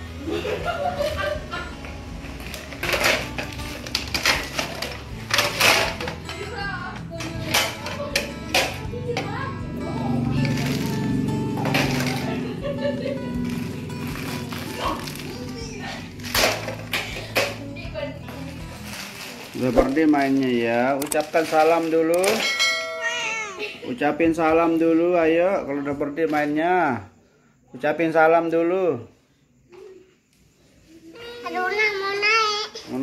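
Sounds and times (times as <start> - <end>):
background music: 0.0 - 26.2
plastic toy cookware clattering: 2.5 - 6.4, 7.2 - 8.8.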